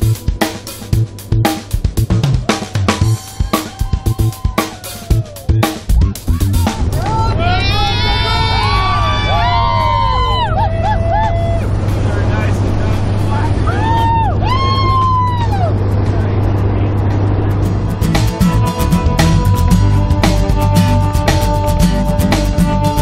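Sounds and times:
people whooping and cheering: 0:02.4 - 0:11.8, 0:13.6 - 0:15.8
aircraft engine drone: 0:07.4 - 0:14.4.

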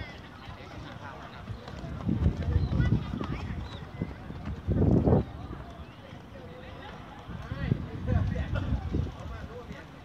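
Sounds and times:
running footsteps on grass: 0:00.0 - 0:10.0.

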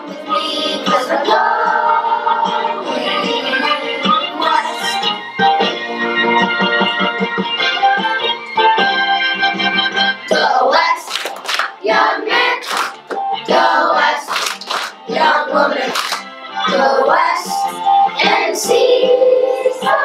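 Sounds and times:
children's chorus singing: 0:00.0 - 0:05.1, 0:10.3 - 0:11.2, 0:11.8 - 0:14.4, 0:15.1 - 0:20.0
keyboard accompaniment: 0:00.0 - 0:20.0.

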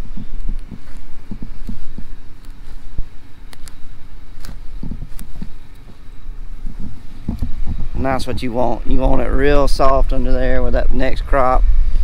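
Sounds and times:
soft thumps and rustles: 0:00.0 - 0:08.0
wind buffeting microphone: 0:00.0 - 0:12.0.

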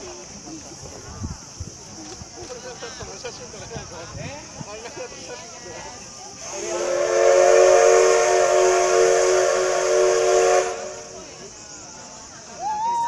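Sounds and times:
hissing steam: 0:00.0 - 0:13.0
steam whistle blast: 0:06.4 - 0:11.2.

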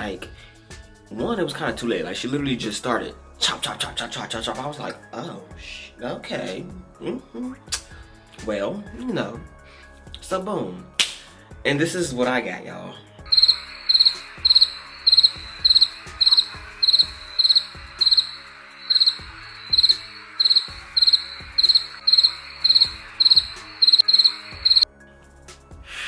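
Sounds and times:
crickets chirping: 0:13.3 - 0:24.9.

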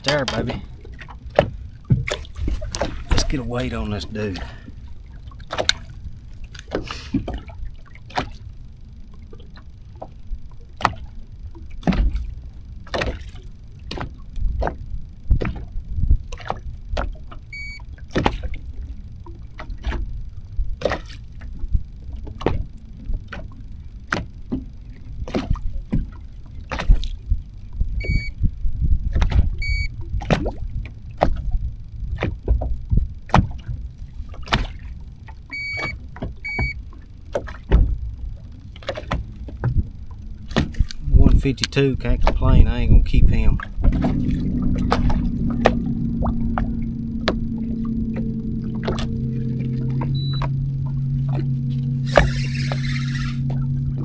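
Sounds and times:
water slapping against boat hull: 0:00.0 - 0:08.5, 0:10.8 - 0:27.2, 0:29.0 - 0:54.0
low rumble: 0:00.0 - 0:54.0
short electronic beeps: 0:17.5 - 0:17.9, 0:28.0 - 0:28.4, 0:29.6 - 0:29.9, 0:35.5 - 0:36.8, 0:50.0 - 0:53.6.

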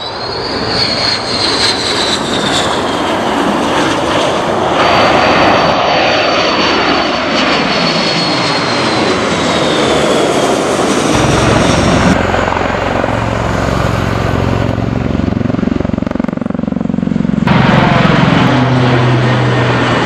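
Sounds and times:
fighter jet engines whining: 0:00.0 - 0:20.0
jet aircraft passing low overhead: 0:00.0 - 0:20.0.

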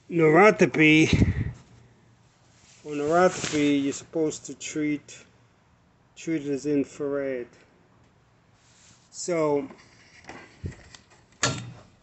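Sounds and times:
faint rustling: 0:01.5 - 0:04.1.

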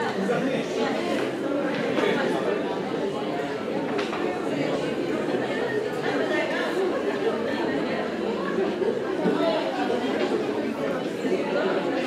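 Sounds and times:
crowd chattering in a hall: 0:00.0 - 0:12.0.

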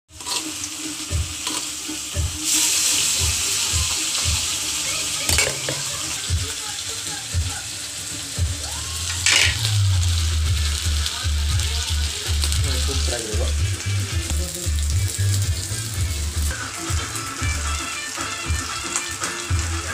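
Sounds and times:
fish sizzling in oil: 0:00.1 - 0:19.9.

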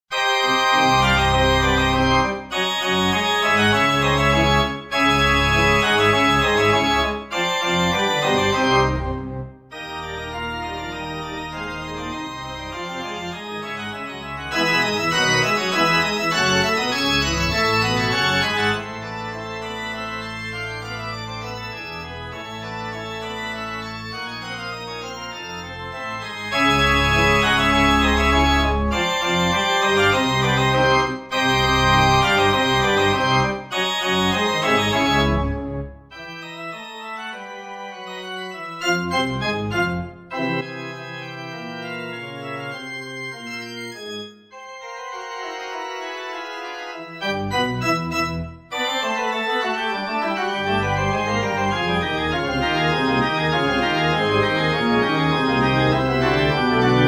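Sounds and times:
organ playing in full chords: 0:00.1 - 0:57.0.

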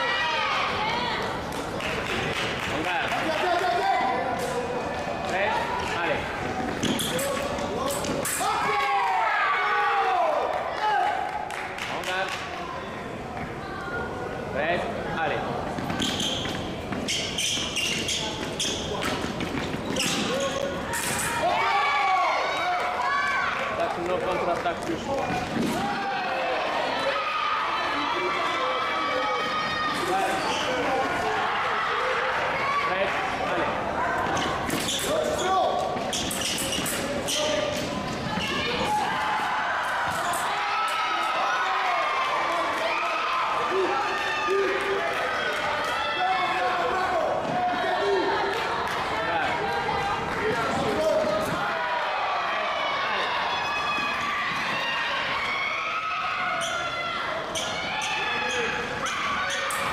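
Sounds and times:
voices in a hall: 0:00.0 - 0:59.9
fencing shoes squeaking: 0:06.7 - 0:08.5, 0:15.9 - 0:21.4, 0:29.9 - 0:30.9, 0:34.2 - 0:38.9.

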